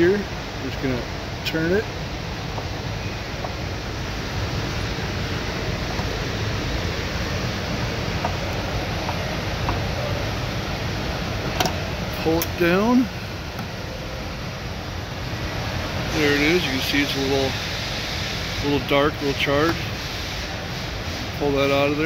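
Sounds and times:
steady rushing noise: 0.0 - 22.0.

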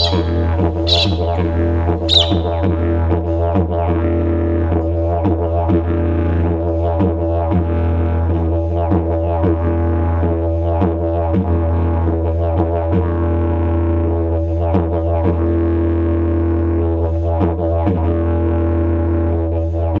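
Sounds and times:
didgeridoo drone: 0.0 - 2.8.

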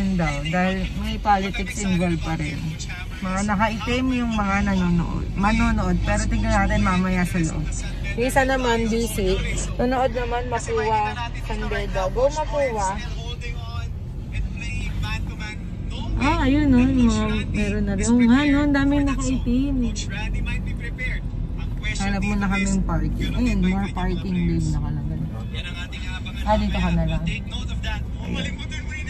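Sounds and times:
people talking: 0.0 - 13.8, 14.6 - 29.0
car engine and road noise: 0.0 - 29.0.

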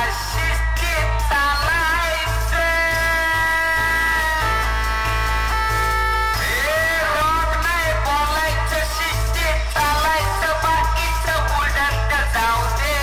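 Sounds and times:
heavy steady bass: 0.0 - 13.0
loud dance music: 0.0 - 13.0
high melody: 0.1 - 13.0.

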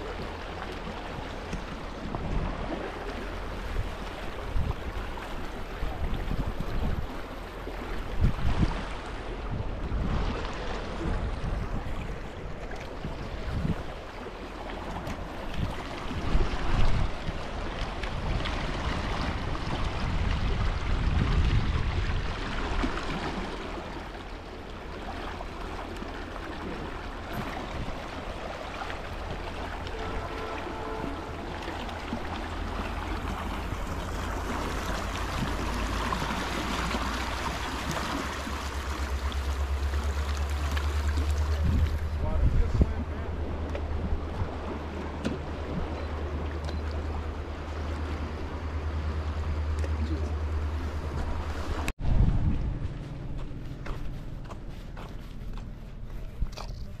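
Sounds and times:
wind buffeting microphone: 0.0 - 24.0, 26.6 - 57.0
river current rushing: 0.0 - 52.0.

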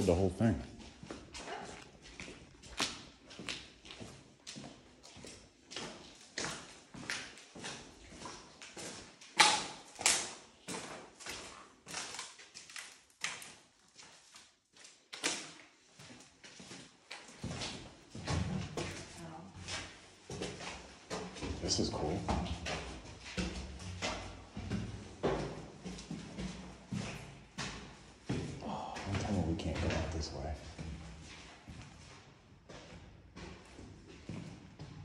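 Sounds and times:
footsteps scuffing on gritty floor: 0.6 - 9.2, 15.9 - 35.0.

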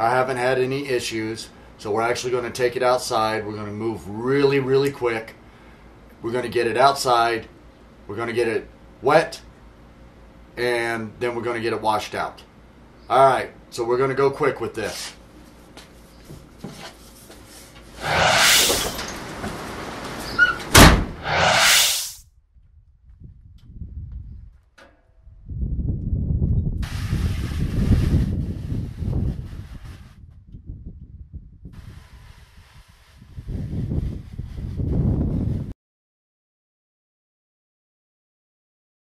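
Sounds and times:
low rumbling noise: 18.0 - 19.5
door sliding open and shut: 18.0 - 22.2.

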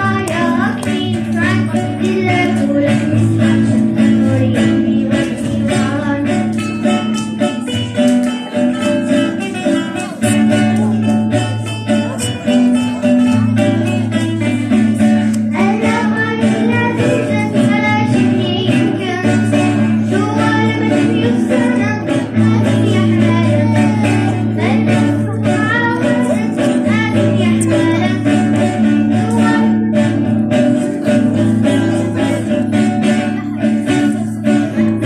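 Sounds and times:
child singing: 0.0 - 10.6, 15.4 - 35.0
acoustic guitars strummed: 0.0 - 35.0.

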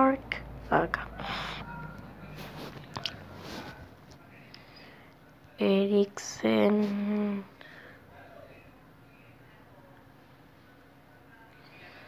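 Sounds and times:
quiet breathing and mouth noises: 0.3 - 5.5.

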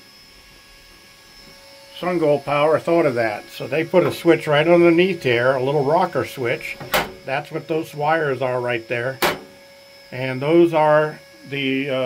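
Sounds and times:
faint steady hum: 0.0 - 12.0
thin high-pitched whine: 0.0 - 12.0.

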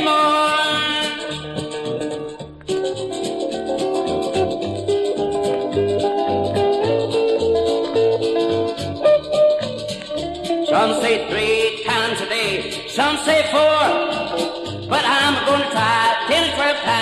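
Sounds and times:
country band instrumental: 0.0 - 17.0
pulsing bass line: 0.7 - 17.0
rattling percussion beat: 0.7 - 17.0.

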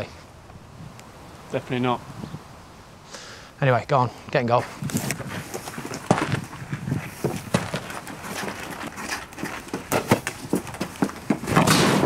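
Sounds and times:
shoes tapping on concrete: 4.8 - 11.8.

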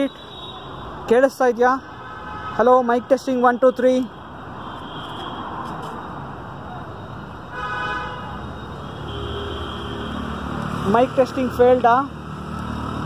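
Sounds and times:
vehicle horn honking: 7.5 - 8.4, 9.0 - 10.2.

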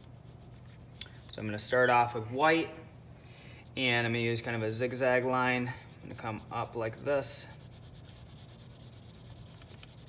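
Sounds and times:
colouring stick rubbing on paper: 5.6 - 10.0.

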